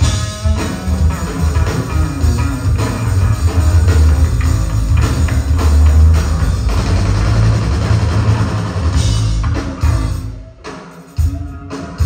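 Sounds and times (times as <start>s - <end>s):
electric bass solo: 0.0s - 10.1s
drum kit: 0.0s - 12.0s.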